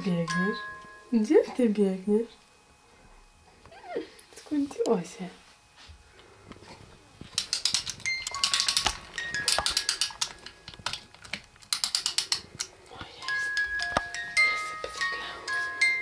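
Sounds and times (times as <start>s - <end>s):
music box tinkling melody: 0.0s - 1.3s, 8.0s - 10.7s, 13.2s - 16.0s
ratchet clicking while winding: 7.4s - 10.6s, 11.7s - 12.5s.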